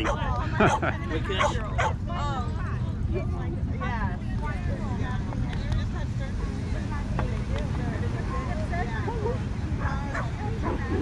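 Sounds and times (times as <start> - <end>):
dogs barking and yipping: 0.0 - 2.0
wind rumble on microphone: 0.0 - 11.0.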